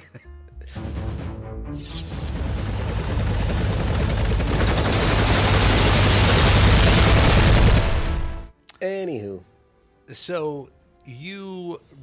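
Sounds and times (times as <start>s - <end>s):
helicopter rotor chopping: 2.2s - 8.0s.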